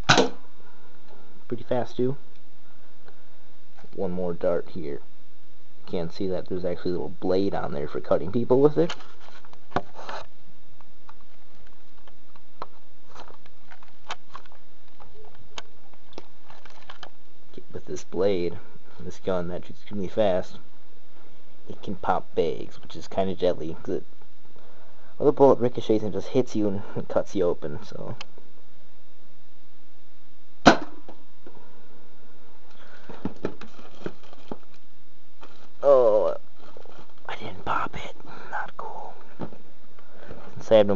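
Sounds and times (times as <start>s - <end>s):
toy blaster firing crack: 0.0s - 0.4s, 30.6s - 31.1s
steady low hum: 0.0s - 40.9s
handling clicks and rustles: 8.6s - 17.2s, 33.0s - 35.8s.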